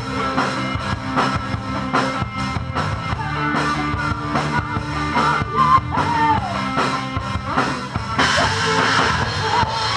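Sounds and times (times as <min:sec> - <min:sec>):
live rock band playing: 0:00.0 - 0:09.9.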